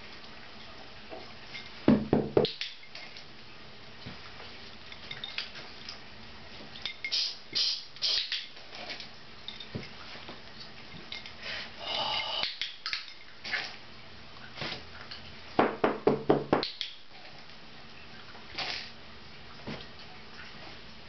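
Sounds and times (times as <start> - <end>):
light clinks: 4.9 - 5.6, 9.4 - 10.0
soft handling rustles: 8.6 - 11.7.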